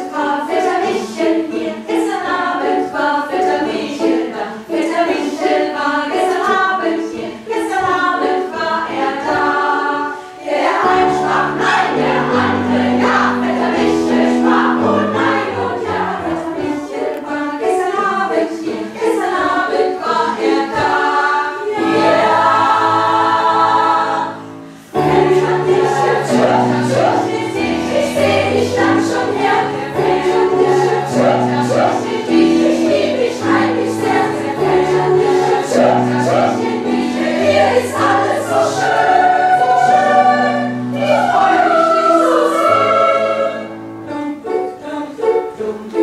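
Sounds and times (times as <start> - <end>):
mixed choir singing in harmony: 0.0 - 46.0.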